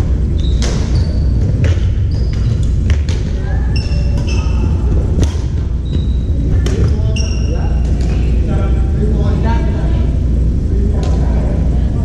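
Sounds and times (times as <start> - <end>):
steady low rumble: 0.0 - 12.0
sneaker squeak: 0.2 - 8.4
background chatter: 3.2 - 12.0.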